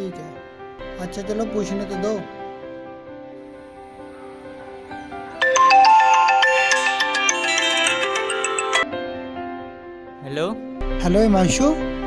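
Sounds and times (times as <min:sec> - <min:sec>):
soft background music: 0:00.0 - 0:12.0
phone ringtone melody: 0:05.4 - 0:08.9.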